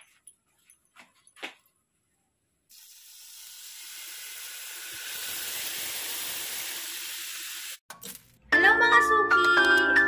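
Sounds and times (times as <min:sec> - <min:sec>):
shrimp sizzling on a hot plate: 0:02.8 - 0:07.8.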